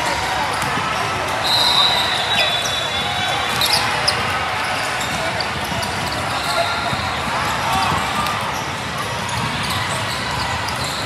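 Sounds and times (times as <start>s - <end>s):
voices chattering and calling: 0.0s - 11.0s.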